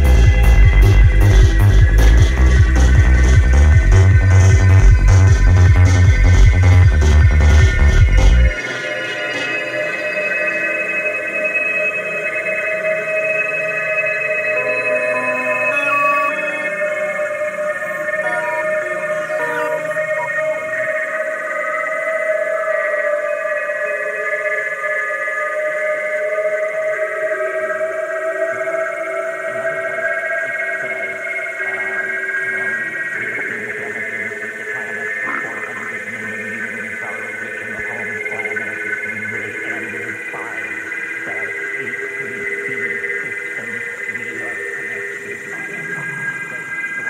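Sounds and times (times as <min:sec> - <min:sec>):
sustained synthesizer tones: 0:13.7 - 0:21.0
warbling chirping synth sounds: 0:14.5 - 0:16.9.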